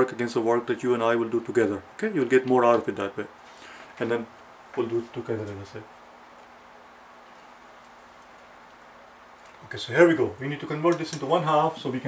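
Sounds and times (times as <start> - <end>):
faint hum: 0.0 - 12.0
steady hiss: 0.0 - 12.0.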